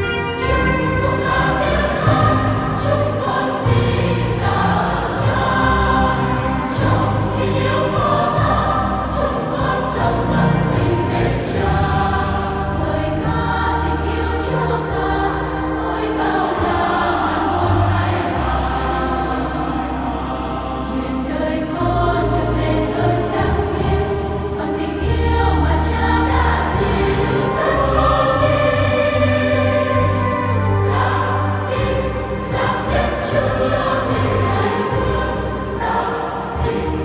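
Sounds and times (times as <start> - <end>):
mixed choir singing a hymn: 0.0 - 37.0.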